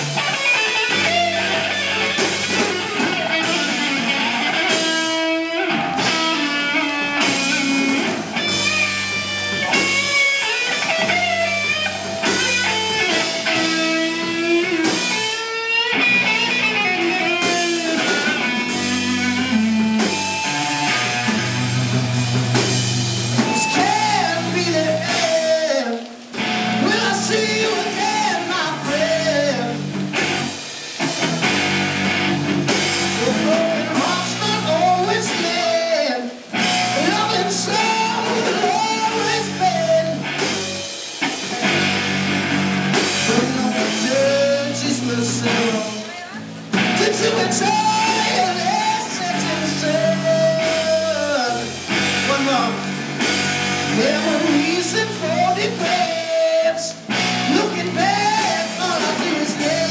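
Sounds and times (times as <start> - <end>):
bass guitar: 0.0 - 59.9
drum kit: 0.0 - 59.9
electric guitar: 0.0 - 59.9
rock band playing: 0.0 - 59.9
person singing: 23.4 - 30.0, 33.1 - 41.0, 43.1 - 53.0, 53.9 - 59.9.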